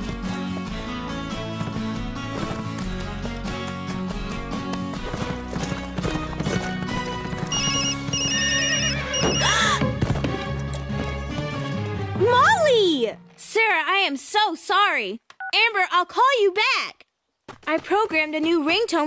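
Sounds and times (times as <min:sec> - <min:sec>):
horse hoofbeats: 0:00.0 - 0:12.6, 0:17.5 - 0:19.0
horse whinnying: 0:07.2 - 0:10.0
cell phone ringtone beeps: 0:07.5 - 0:09.5
cartoon score: 0:07.5 - 0:09.9.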